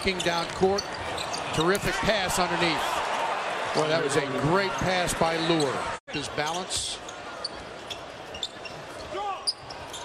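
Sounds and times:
shoe squeaks on hardwood: 7.4 - 10.0.

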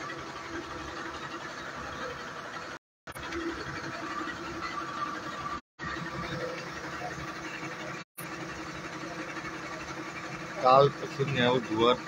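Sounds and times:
diesel engine humming: 0.0 - 12.0.

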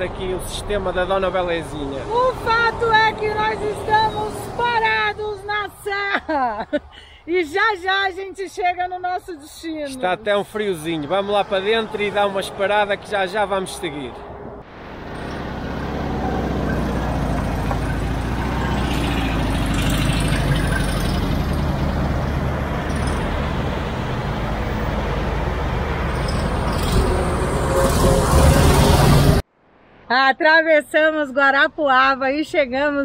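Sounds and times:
highway traffic passing: 0.0 - 33.0.

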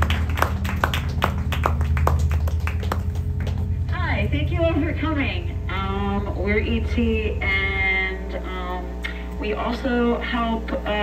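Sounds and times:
audience applause: 0.0 - 3.9
low amplifier hum: 0.0 - 11.0.

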